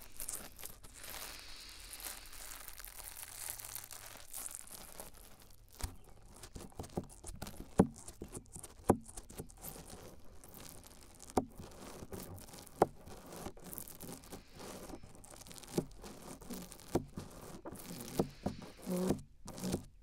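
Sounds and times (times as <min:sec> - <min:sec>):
brush rubbing on microphone: 0:00.0 - 0:20.0.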